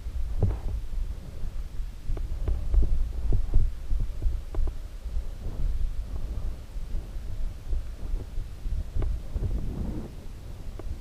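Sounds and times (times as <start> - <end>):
bike knocking and rattling: 0.0 - 0.9.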